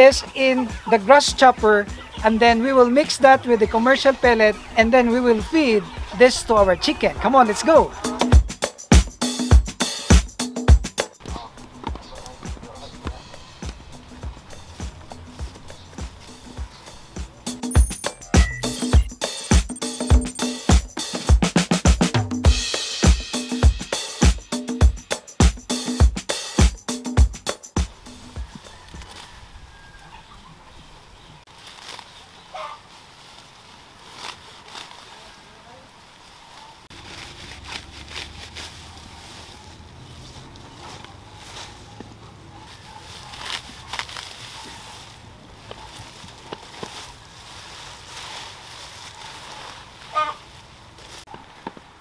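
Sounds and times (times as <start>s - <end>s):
grass rustling and snapping: 11.0s - 17.4s, 28.5s - 29.4s, 31.5s - 35.4s, 36.9s - 51.9s.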